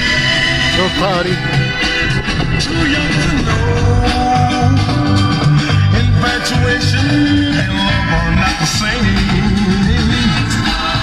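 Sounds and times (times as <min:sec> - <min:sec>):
music on car stereo: 0:00.0 - 0:11.0.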